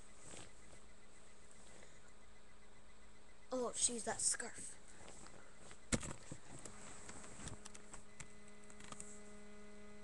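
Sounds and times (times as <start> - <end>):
steady electrical hum: 0.0 - 10.0
faint clicks of webcam moving: 5.0 - 9.3.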